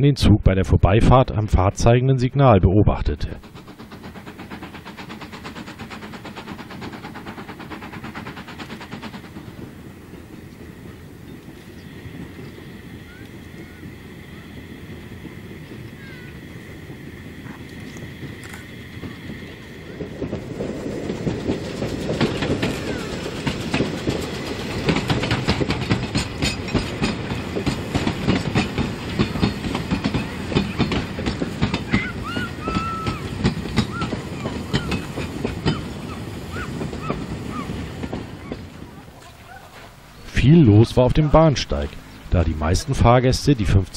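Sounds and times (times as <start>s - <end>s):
steam train running: 1.1s - 43.9s
wheels clattering over rail joints: 3.4s - 40.4s.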